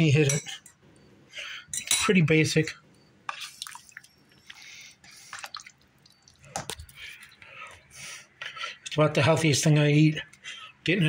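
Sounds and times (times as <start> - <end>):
ladle sloshing stew: 3.3 - 7.6.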